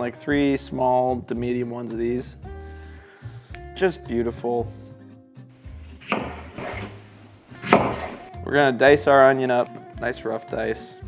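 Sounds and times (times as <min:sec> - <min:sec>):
background music: 0:00.0 - 0:11.0
knife slicing tomato on cutting board: 0:05.8 - 0:08.4.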